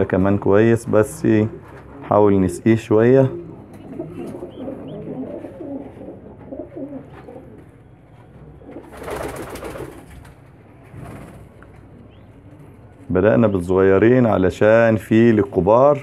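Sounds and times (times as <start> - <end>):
pigeons cooing: 3.0 - 10.1.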